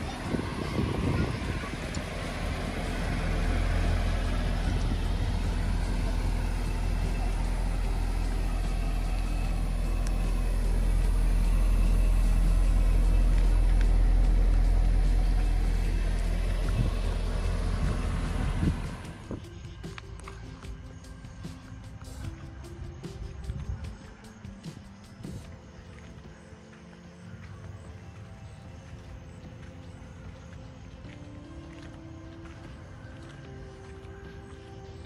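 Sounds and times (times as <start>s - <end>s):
car engine idling: 0.0s - 35.0s.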